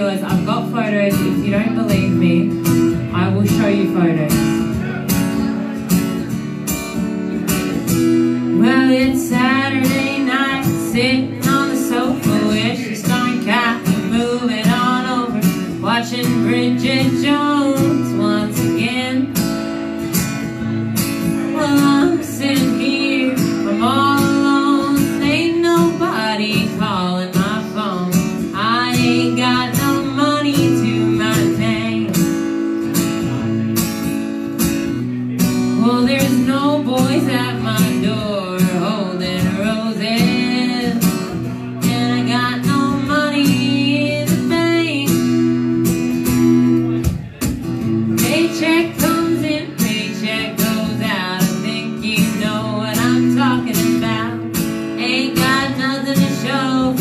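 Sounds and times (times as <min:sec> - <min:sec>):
woman singing: 0:00.0 - 0:04.8, 0:07.8 - 0:20.1, 0:20.7 - 0:32.6, 0:35.6 - 0:46.4, 0:48.0 - 0:57.0
acoustic guitars strummed and picked: 0:00.0 - 0:57.0.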